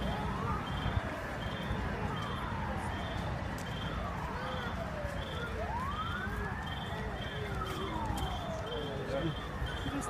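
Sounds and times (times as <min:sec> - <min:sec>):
emergency siren wailing: 0:00.0 - 0:10.0
low street rumble: 0:00.0 - 0:10.0.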